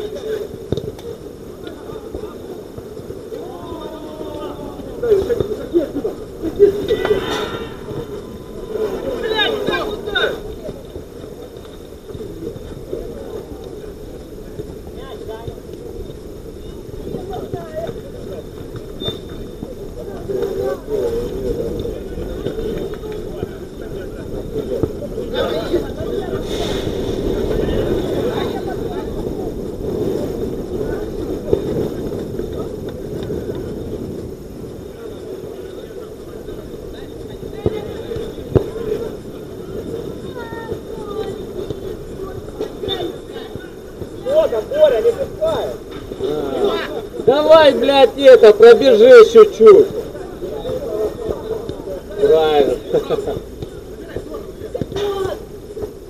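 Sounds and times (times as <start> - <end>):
outdoor background noise: 0.0 - 56.0
distant players shouting: 6.6 - 10.6, 54.9 - 55.6.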